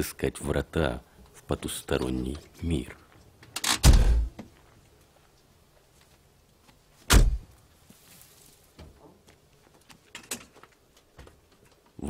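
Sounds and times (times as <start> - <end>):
heavy door clunk: 3.6 - 4.4, 7.1 - 7.4.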